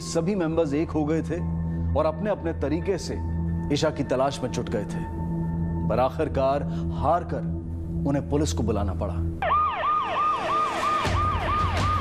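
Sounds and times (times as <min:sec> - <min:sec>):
low pulsing music: 0:00.0 - 0:12.0
police siren: 0:09.4 - 0:12.0.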